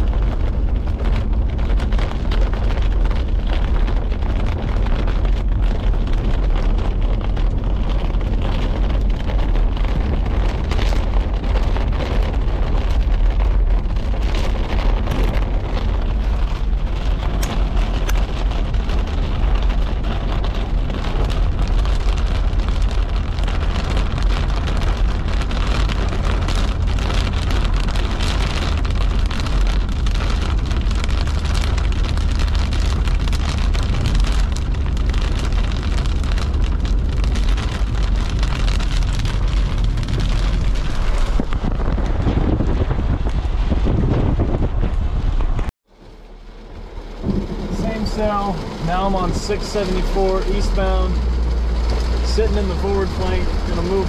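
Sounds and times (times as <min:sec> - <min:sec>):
heavy rain on a car: 0:00.0 - 0:54.0
low rumble: 0:00.0 - 0:54.0.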